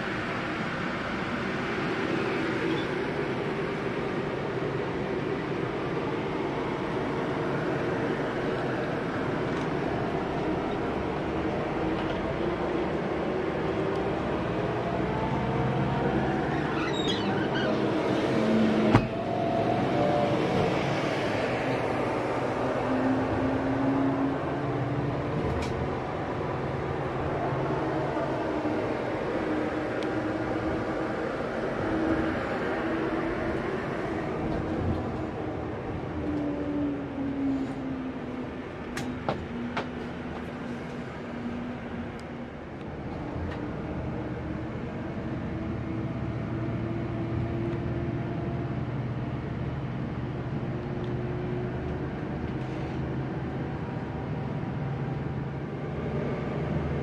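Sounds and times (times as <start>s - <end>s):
coach engine drone inside cabin: 0.0s - 57.0s.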